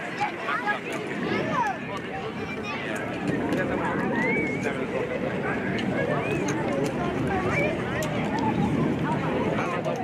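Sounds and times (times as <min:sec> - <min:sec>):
children's voices: 0:00.0 - 0:03.0, 0:05.8 - 0:10.0
many voices chattering: 0:00.0 - 0:10.0.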